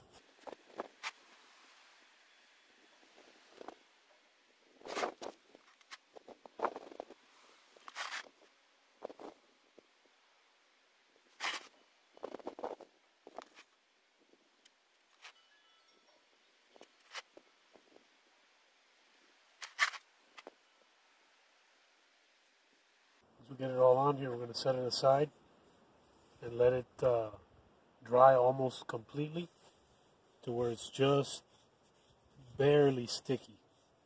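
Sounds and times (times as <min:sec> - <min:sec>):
foam brush scratchy strokes: 0:04.7 - 0:09.4, 0:29.4 - 0:34.0.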